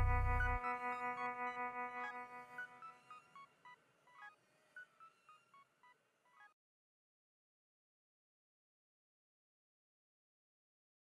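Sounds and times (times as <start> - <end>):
beeping synthesizer melody: 0.0 - 0.7.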